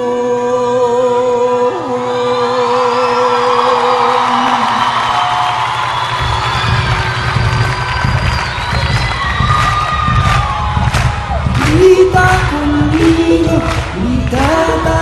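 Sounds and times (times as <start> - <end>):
crowd cheering: 1.8 - 15.0
live instrumental concert music: 4.0 - 15.0
low beat: 6.2 - 15.0.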